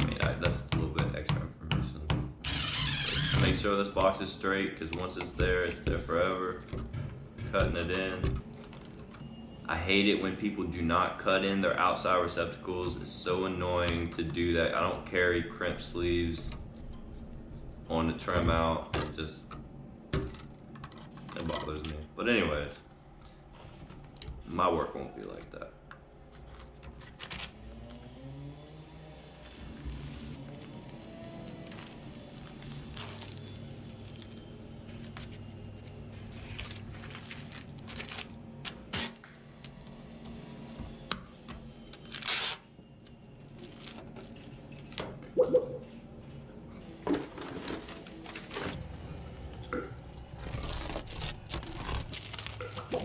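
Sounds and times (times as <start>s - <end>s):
quiet background music: 3.2s - 53.0s
tape tearing: 26.3s - 27.7s, 36.6s - 39.3s, 41.9s - 42.7s, 50.4s - 53.0s
plastic wrap crinkling and scraping: 29.4s - 39.2s, 50.3s - 53.0s.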